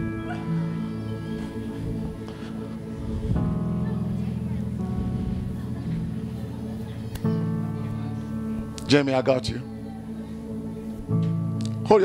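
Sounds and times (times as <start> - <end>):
keyboard sustained chords: 0.0 - 12.0.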